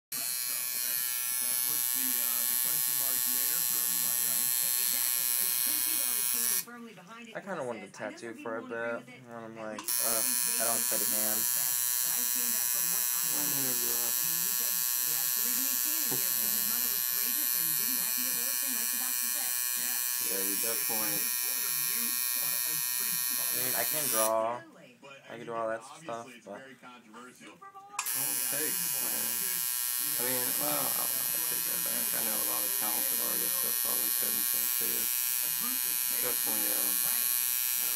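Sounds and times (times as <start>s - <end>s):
tattoo machine buzzing: 0.1s - 6.7s, 9.8s - 24.4s, 28.0s - 37.9s.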